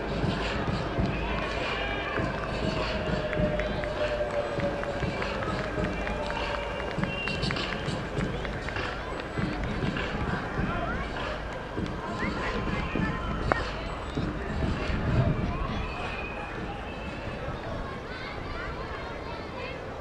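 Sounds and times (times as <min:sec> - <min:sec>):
distant indistinct voices: 0:00.0 - 0:20.0.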